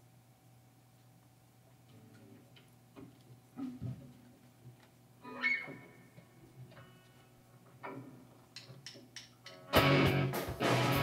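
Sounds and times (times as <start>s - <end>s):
guitar pluck: 9.7s - 11.0s.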